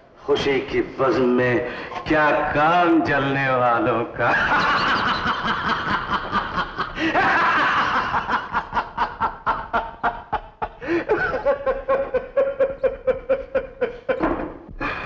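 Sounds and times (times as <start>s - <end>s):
man laughing loudly: 4.2s - 14.3s.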